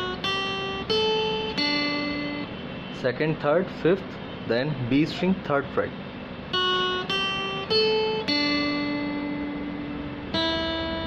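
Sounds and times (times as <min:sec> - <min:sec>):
acoustic guitar notes: 0:00.0 - 0:11.0.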